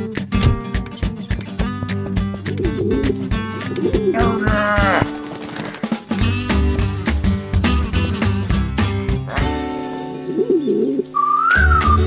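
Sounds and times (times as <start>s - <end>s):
cartoon guitar music: 0.0s - 5.3s, 5.9s - 12.0s.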